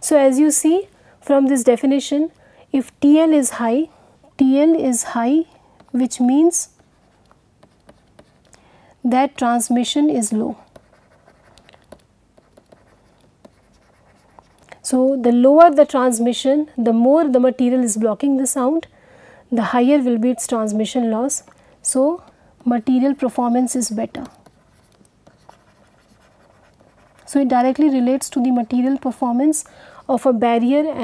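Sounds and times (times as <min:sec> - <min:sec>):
stylus scratching on pen tablet: 0:05.8 - 0:08.6, 0:10.2 - 0:14.7, 0:21.9 - 0:27.9.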